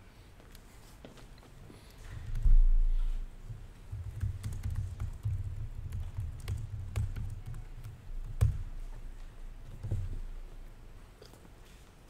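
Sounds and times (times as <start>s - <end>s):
computer keyboard typing: 3.9s - 8.6s.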